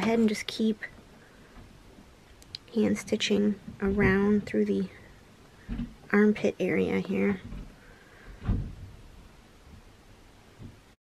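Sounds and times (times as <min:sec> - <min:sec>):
dull thump: 0:03.8 - 0:04.4, 0:05.6 - 0:06.0, 0:08.3 - 0:09.1.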